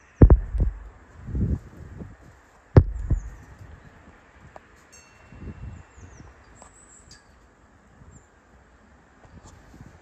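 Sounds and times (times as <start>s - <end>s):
wind buffeting microphone: 0.0s - 4.6s, 5.3s - 6.4s
metallic chime ring: 4.9s - 5.4s.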